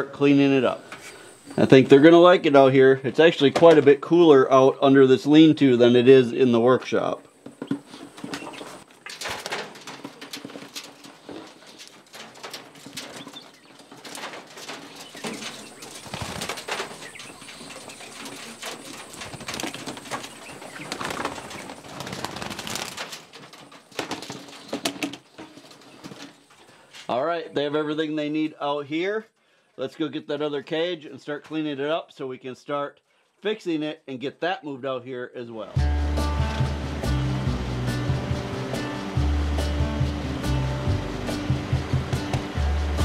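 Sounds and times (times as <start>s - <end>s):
clicks and knocks of cage: 7.5s - 26.6s
bird wingbeats: 7.6s - 26.4s.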